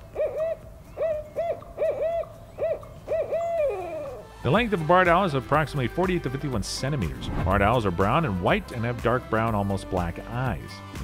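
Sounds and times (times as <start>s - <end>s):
owl hooting: 0.0s - 4.3s.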